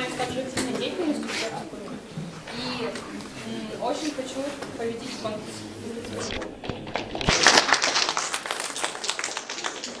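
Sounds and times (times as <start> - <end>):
audience clapping: 6.6 - 10.0.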